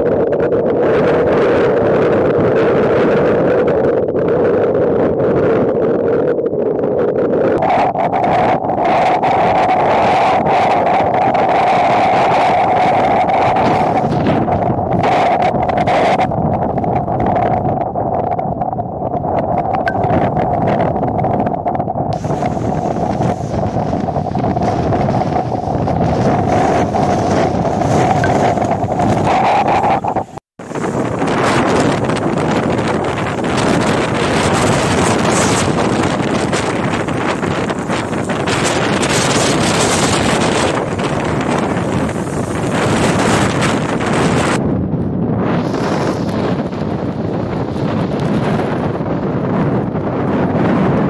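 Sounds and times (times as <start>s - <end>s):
wind buffeting microphone: 0.0s - 51.0s
steady tone: 19.9s - 20.4s, 27.7s - 31.4s
sea waves breaking against seawall: 22.1s - 44.6s.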